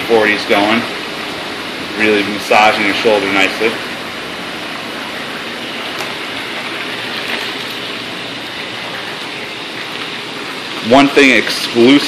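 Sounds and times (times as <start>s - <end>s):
hot tub water churning: 0.0s - 12.0s.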